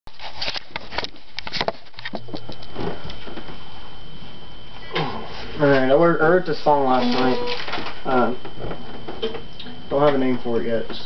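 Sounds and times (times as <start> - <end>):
faint high steady whine: 0.1 - 11.0.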